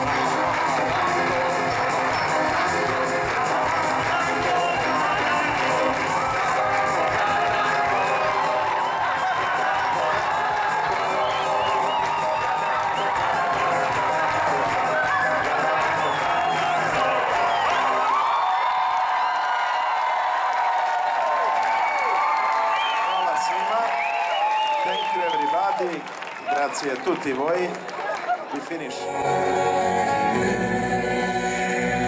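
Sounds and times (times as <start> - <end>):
live concert music: 0.0 - 18.6, 27.3 - 32.0
crowd cheering: 0.0 - 30.3.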